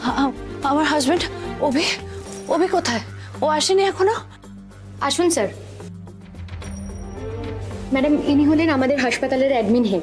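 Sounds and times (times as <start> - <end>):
soft background music: 0.0 - 10.0
thin high ringing tone: 6.6 - 8.5.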